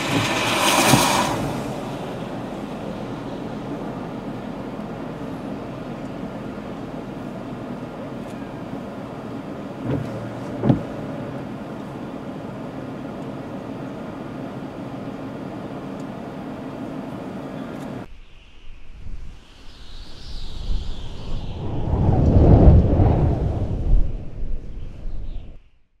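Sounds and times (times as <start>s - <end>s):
vehicle cabin hum: 0.0s - 18.1s
sweeping whoosh: 18.1s - 25.3s
deep rumble: 18.1s - 25.6s.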